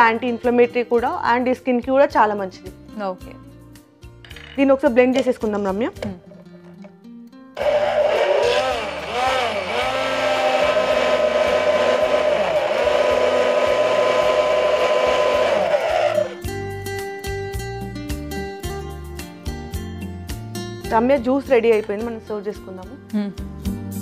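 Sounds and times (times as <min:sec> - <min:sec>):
electric hand blender running: 0:07.6 - 0:16.5.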